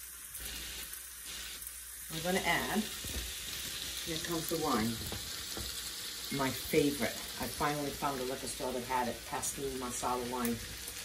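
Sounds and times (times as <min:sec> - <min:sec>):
food sizzling in oil: 0:00.0 - 0:11.0.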